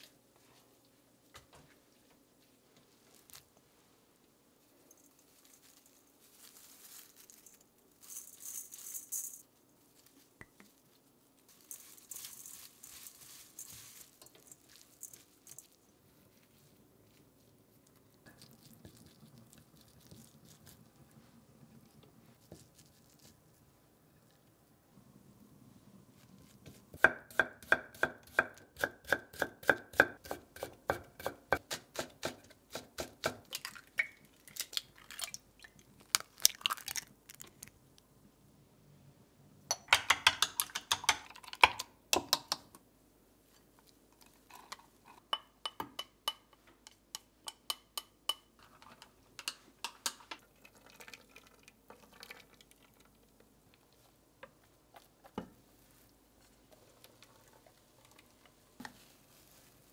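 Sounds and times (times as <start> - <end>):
eggs beaten in glass jug: 39.7 - 42.7.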